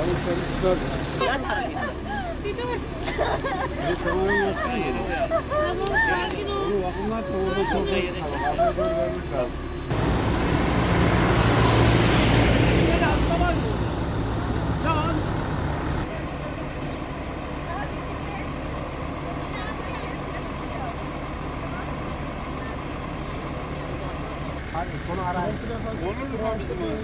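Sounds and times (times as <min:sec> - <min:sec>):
outdoor background noise: 0:00.0 - 0:27.0
vehicle engine idling: 0:00.0 - 0:27.0.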